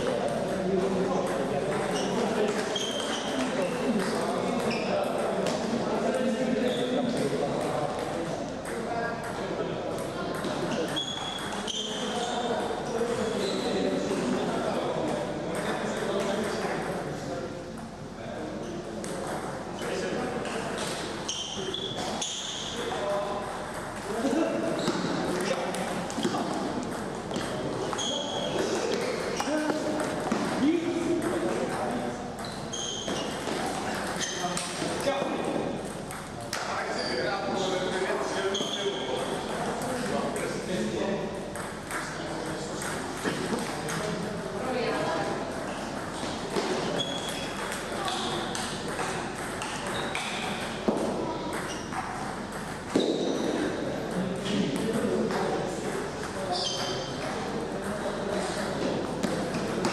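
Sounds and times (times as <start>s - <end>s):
ping pong balls clicking: 0.0s - 5.6s, 6.6s - 12.8s, 18.9s - 36.9s, 41.5s - 44.4s, 45.5s - 59.9s
indistinct chatter: 0.0s - 59.9s.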